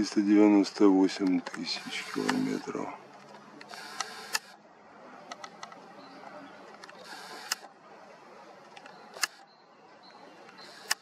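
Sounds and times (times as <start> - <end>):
camera handling rustles: 1.1 - 4.6
camera mechanism click: 1.2 - 2.6, 3.3 - 4.6, 6.8 - 7.7
faint camera ticks: 1.2 - 2.6.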